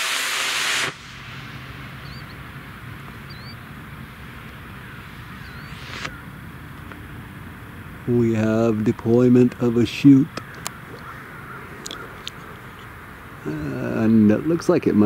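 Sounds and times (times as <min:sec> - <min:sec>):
rocket motor hissing: 0:00.0 - 0:06.4
faint bird chirps: 0:01.7 - 0:07.2, 0:10.0 - 0:14.5.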